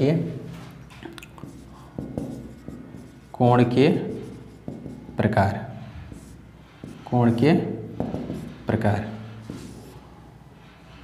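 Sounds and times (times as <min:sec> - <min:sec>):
marker writing on whiteboard: 0:01.3 - 0:10.2.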